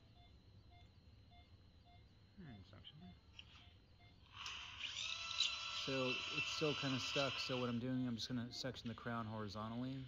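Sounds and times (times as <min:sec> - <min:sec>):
dental drill whining: 0:04.2 - 0:08.0.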